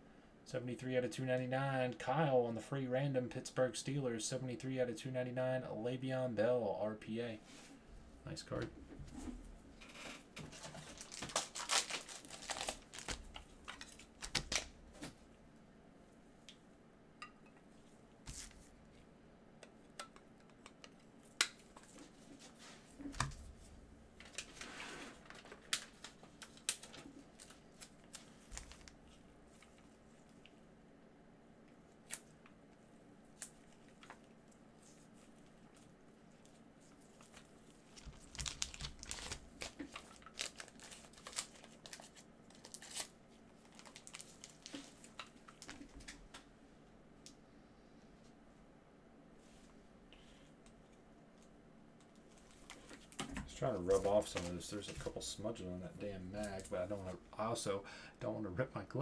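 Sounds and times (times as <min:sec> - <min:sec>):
plastic card sleeves crinkling: 0:10.4 - 0:14.8, 0:24.2 - 0:29.9, 0:33.4 - 0:46.2, 0:52.2 - 0:55.2, 0:56.4 - 0:57.2.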